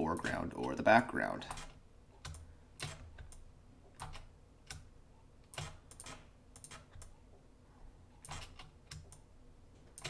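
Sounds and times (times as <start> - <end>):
computer mouse clicks: 4.0 - 7.2, 8.2 - 9.3.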